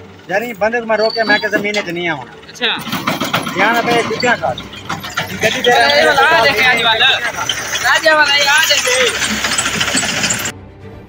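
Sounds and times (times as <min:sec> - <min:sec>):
man speaking: 0:00.3 - 0:02.9, 0:05.2 - 0:09.2.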